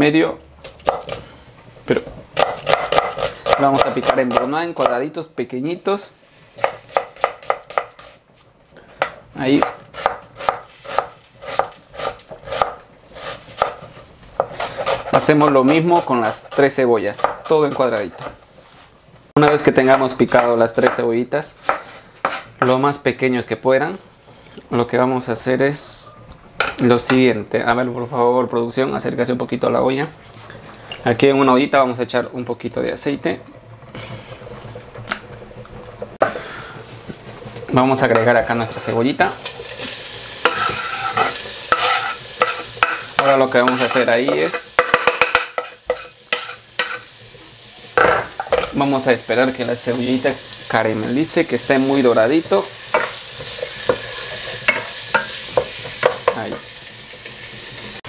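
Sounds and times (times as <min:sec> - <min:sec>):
faint steady hiss: 0:00.0 - 0:58.0
knife chopping on wooden board: 0:02.4 - 0:04.5, 0:06.6 - 0:08.1, 0:09.6 - 0:12.8, 0:13.6 - 0:13.8
cooking pot scraping on stove: 0:39.4 - 0:47.1.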